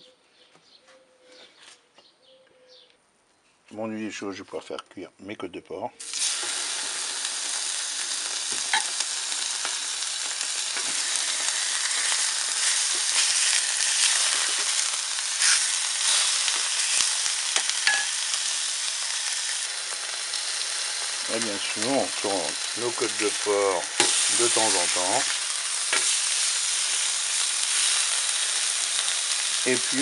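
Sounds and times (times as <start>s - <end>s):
meat sizzling on a griddle: 6.0s - 30.0s.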